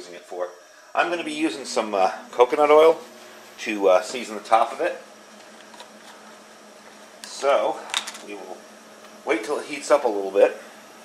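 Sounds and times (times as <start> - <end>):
camp stove burners hissing: 0.0 - 11.0.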